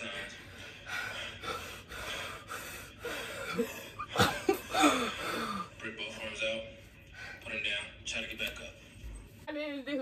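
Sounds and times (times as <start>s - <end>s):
deep breaths: 0.0s - 4.0s.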